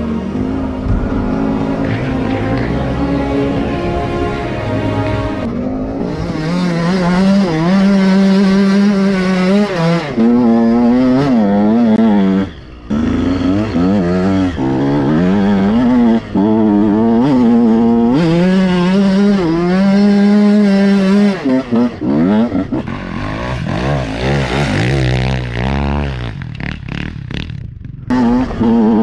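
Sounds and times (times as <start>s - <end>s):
motocross engine revving: 0.0s - 29.0s.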